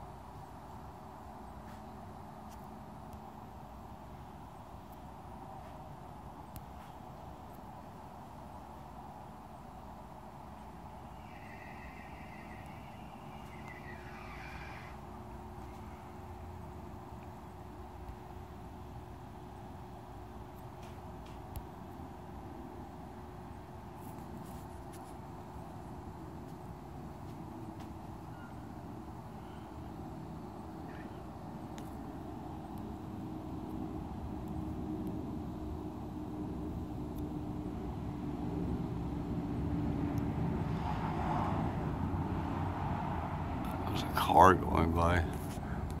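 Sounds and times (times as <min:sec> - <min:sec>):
low-flying aircraft drone: 0:00.0 - 0:46.0
car approaching: 0:10.3 - 0:46.0.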